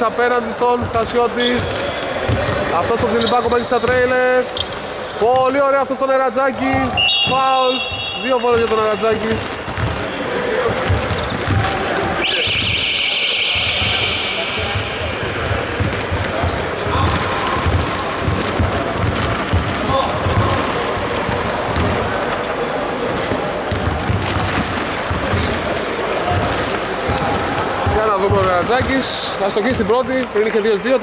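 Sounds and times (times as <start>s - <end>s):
players' voices: 0.0s - 31.0s
basketball bouncing on hardwood: 6.7s - 10.1s, 10.7s - 11.8s, 14.7s - 22.0s.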